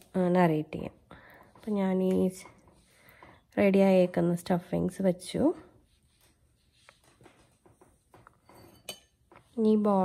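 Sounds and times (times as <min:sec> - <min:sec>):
metal spoon scraping and clinking: 0:08.3 - 0:09.2.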